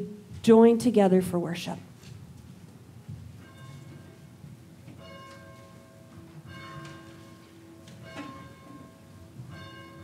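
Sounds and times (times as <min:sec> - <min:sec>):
church bell tolling: 0:03.4 - 0:10.0.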